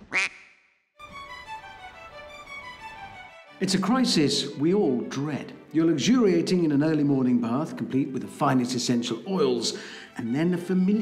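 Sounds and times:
duck quack: 0:00.0 - 0:00.6
music: 0:01.0 - 0:11.0.

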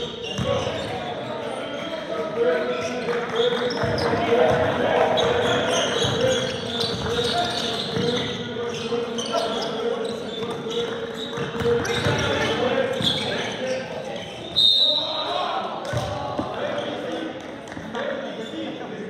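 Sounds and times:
indistinct echoing voices: 0:00.0 - 0:19.0.

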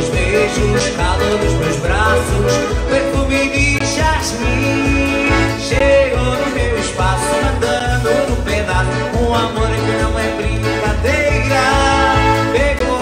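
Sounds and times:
accordion playing: 0:00.0 - 0:13.0
backing track with bass beat: 0:00.0 - 0:13.0
man singing: 0:00.0 - 0:13.0.

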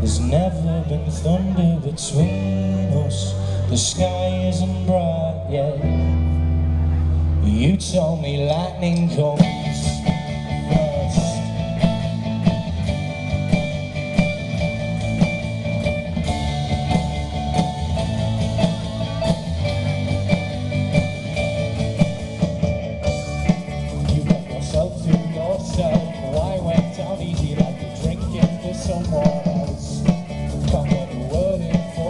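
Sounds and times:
live rock band playing: 0:00.0 - 0:32.0.

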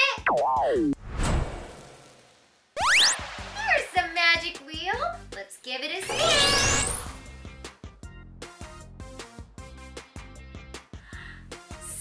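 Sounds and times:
cartoon whoosh: 0:02.8 - 0:03.2, 0:06.1 - 0:07.2.

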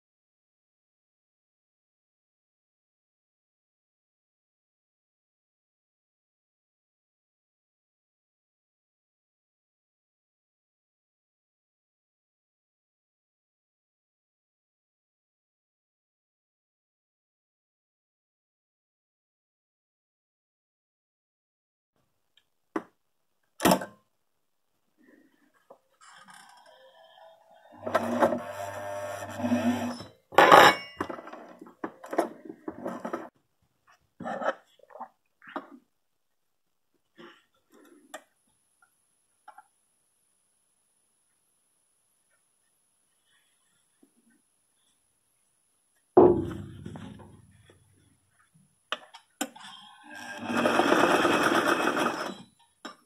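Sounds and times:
sewing machine stitching: 0:26.2 - 0:30.1, 0:49.6 - 0:52.6.

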